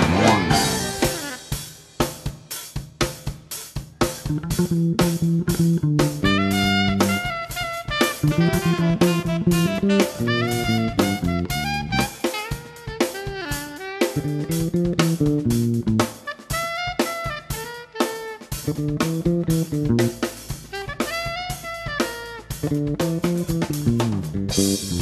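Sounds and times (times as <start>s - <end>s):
electric bass line: 0.0s - 1.5s, 4.3s - 12.3s, 14.2s - 16.2s, 18.6s - 25.0s
sliding melody: 0.0s - 1.6s, 6.2s - 15.8s
drum kit beat: 0.0s - 25.0s.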